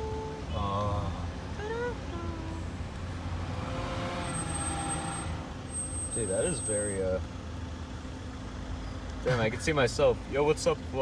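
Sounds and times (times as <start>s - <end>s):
car engine low rumble: 0.0s - 11.0s
road noise: 0.0s - 11.0s.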